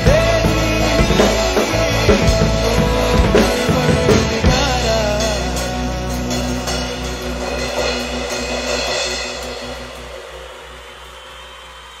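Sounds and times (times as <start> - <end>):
drum kit strikes: 0.0 - 12.0
ringing cymbals: 0.0 - 12.0.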